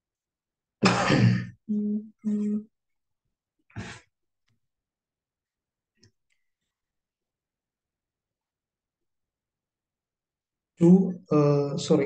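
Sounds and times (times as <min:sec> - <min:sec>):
person clearing throat: 0:00.8 - 0:01.6.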